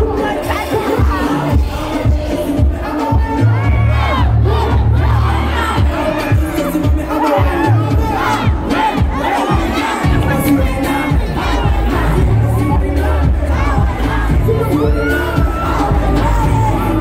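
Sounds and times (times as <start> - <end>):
crowd shouting and singing along: 0.0 - 17.0
loud music with heavy bass: 0.0 - 17.0.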